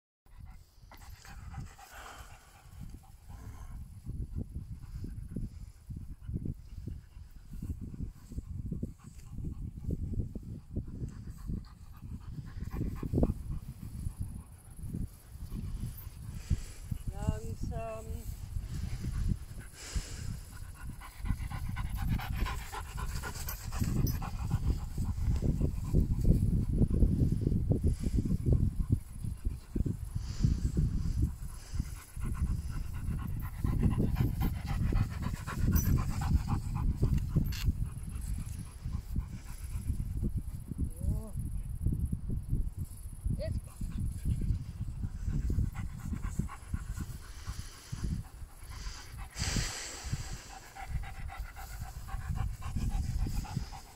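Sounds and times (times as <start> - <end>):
dog panting: 0.3 - 40.7, 43.6 - 53.9.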